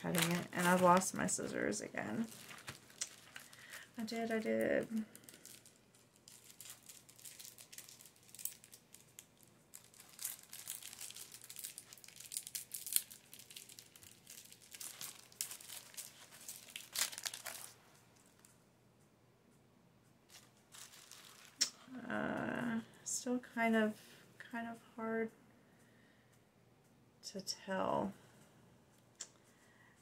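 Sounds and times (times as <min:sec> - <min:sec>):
crinkly material rustling: 0:00.0 - 0:18.6, 0:20.3 - 0:21.8.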